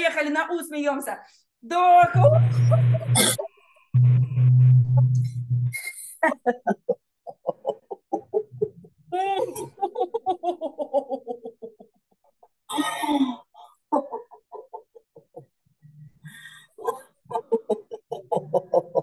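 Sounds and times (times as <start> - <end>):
woman laughing in staccato pulses: 2.2 - 3.6, 6.1 - 12.0, 16.4 - 19.0.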